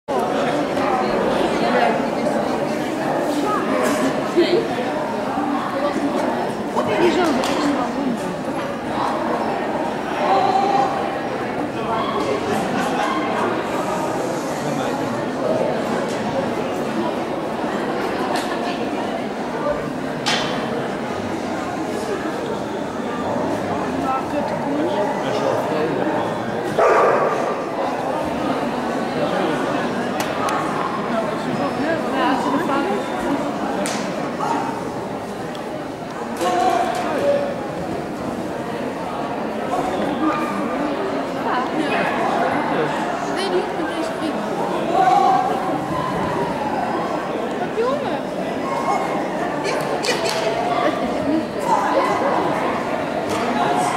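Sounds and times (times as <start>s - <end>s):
crowd chatter indoors: 0.0s - 53.9s
dog barking: 26.8s - 27.6s.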